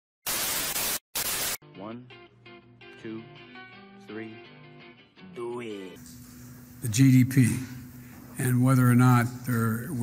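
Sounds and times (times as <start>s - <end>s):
loud tv static hiss: 0.2s - 1.6s, 6.0s - 10.0s.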